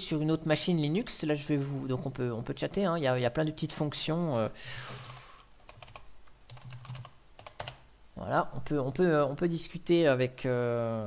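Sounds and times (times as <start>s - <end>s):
keyboard typing clicks: 5.7s - 7.8s.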